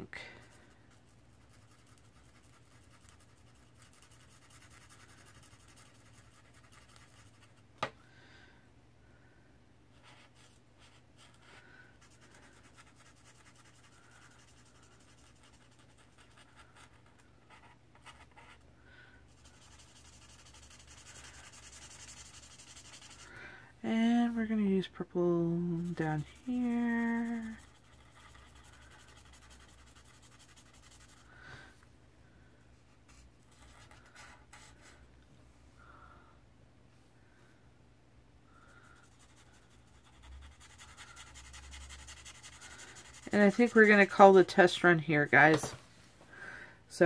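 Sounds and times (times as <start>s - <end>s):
marker scratching on paper: 1.4s - 7.5s, 19.3s - 23.3s, 25.8s - 31.2s, 39.0s - 44.4s.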